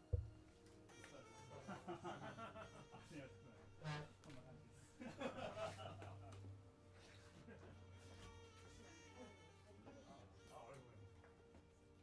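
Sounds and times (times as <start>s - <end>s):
faint indistinct voices: 0.0s - 12.0s.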